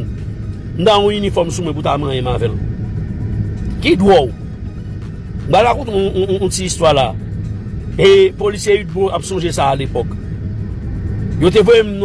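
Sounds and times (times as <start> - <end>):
steady low rumble: 0.0 - 12.0
man speaking: 0.8 - 2.6, 3.8 - 4.4, 8.0 - 10.1, 11.4 - 12.0.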